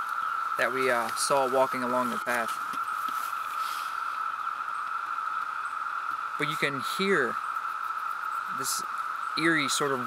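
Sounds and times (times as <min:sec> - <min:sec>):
cicadas ringing: 0:00.0 - 0:10.0.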